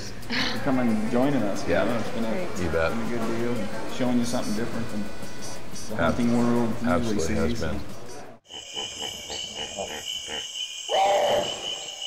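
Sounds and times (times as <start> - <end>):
high-pitched drone: 8.4 - 12.0.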